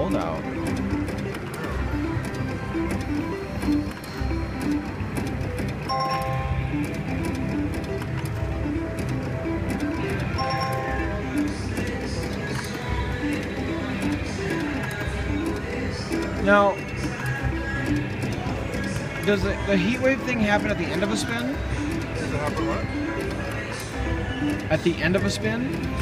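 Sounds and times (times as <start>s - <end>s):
casino background noise: 0.0s - 26.0s
slot machine electronic notes: 0.0s - 26.0s.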